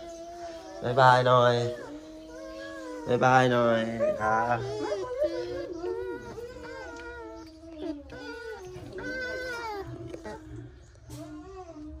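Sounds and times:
bamboo rats whining calls: 0.0s - 10.6s.

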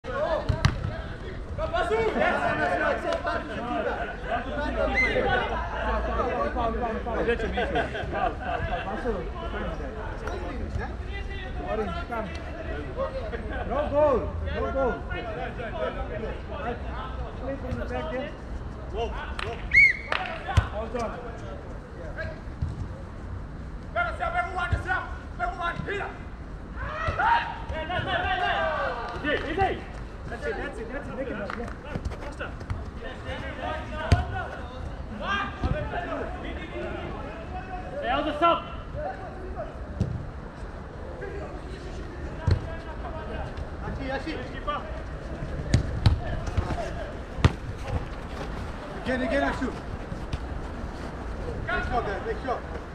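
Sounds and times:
players shouting: 0.1s - 9.8s, 24.0s - 32.4s
football being kicked: 0.4s - 1.0s, 45.6s - 48.0s
ball kicked thud: 0.5s - 0.9s.

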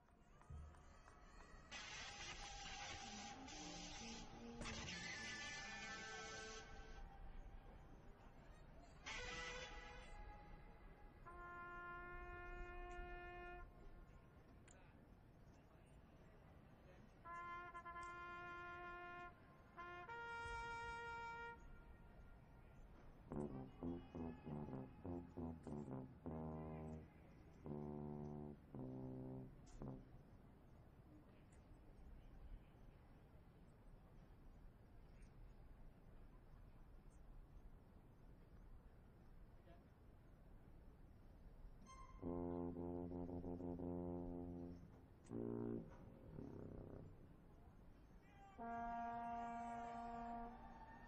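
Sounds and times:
brass horn playing held notes: 9.0s - 14.3s, 17.2s - 30.2s, 41.8s - 47.7s, 48.5s - 51.0s.

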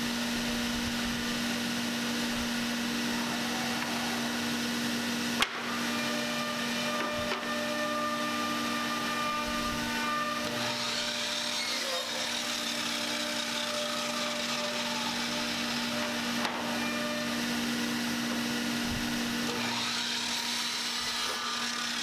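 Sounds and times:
workshop machine humming: 0.0s - 22.0s.

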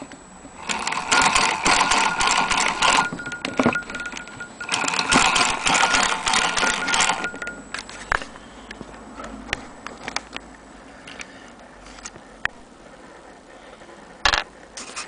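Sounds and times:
sewing machine rapid clicking: 0.6s - 7.5s.

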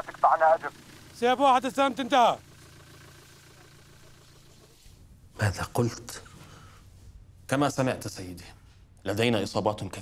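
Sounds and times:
faint low engine hum: 0.0s - 10.0s.

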